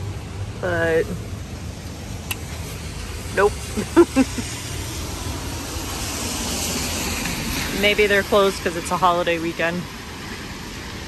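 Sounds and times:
car tyres hissing on wet street: 0:00.0 - 0:11.0
low city rumble: 0:00.0 - 0:11.0.

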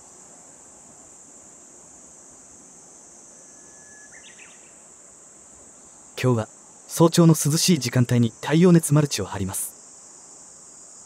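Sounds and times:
insects droning: 0:00.0 - 0:11.0.

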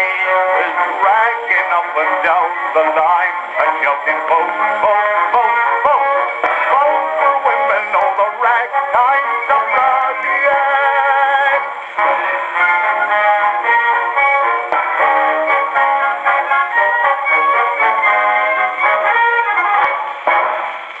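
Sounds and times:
man singing: 0:00.0 - 0:14.0
ragtime record on gramophone: 0:00.0 - 0:21.0
small orchestra playing: 0:00.0 - 0:21.0.

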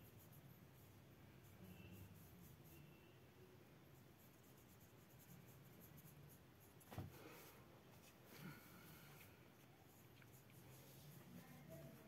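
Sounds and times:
paintbrush strokes on paper: 0:00.0 - 0:03.1, 0:03.9 - 0:12.0.

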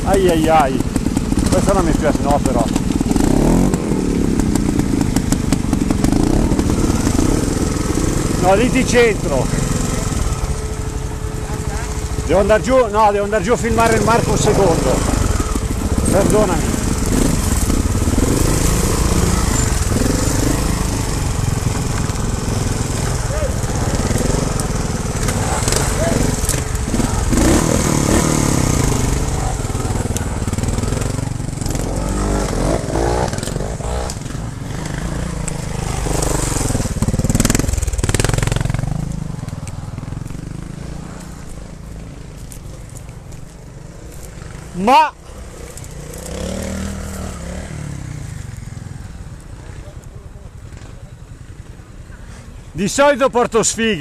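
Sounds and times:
motorcycle engine at low revs: 0:00.0 - 0:52.1
stones crunching under tyres: 0:13.4 - 0:44.8, 0:45.4 - 0:49.5.

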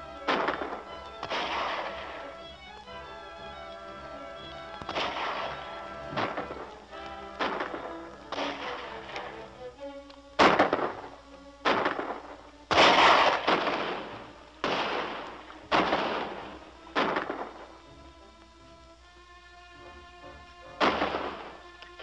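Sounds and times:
film score music: 0:00.0 - 0:22.0
echoing gunshots: 0:00.2 - 0:02.4, 0:04.8 - 0:09.5, 0:10.4 - 0:17.8, 0:20.8 - 0:21.7.

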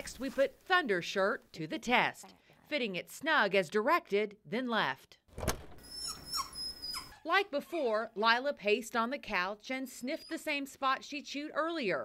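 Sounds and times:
dog whining high-pitched: 0:05.8 - 0:07.2.

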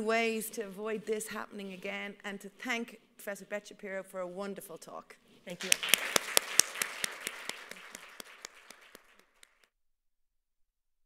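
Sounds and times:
audience applauding: 0:05.6 - 0:09.7
sharp individual claps: 0:05.6 - 0:09.7.

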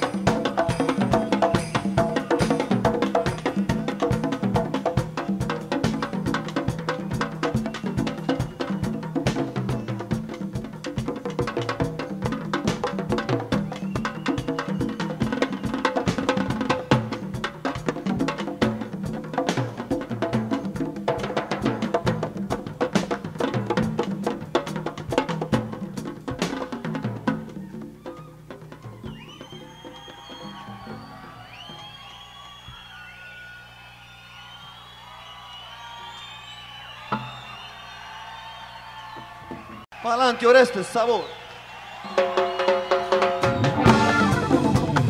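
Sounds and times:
crowd cheering and whistling: 0:00.0 - 0:04.3, 0:06.9 - 0:10.4, 0:13.5 - 0:16.4, 0:27.6 - 0:45.0
band percussion passage: 0:00.0 - 0:33.0, 0:34.4 - 0:45.0.

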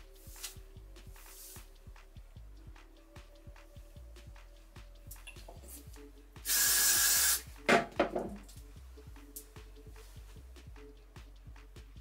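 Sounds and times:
background music with beat: 0:00.0 - 0:12.0
hairspray hiss: 0:00.2 - 0:00.6, 0:01.3 - 0:01.7, 0:06.4 - 0:07.6.

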